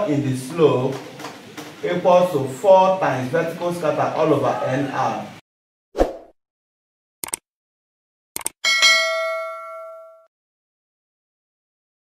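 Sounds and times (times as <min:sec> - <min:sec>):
notification bell dinging: 0:08.6 - 0:10.3.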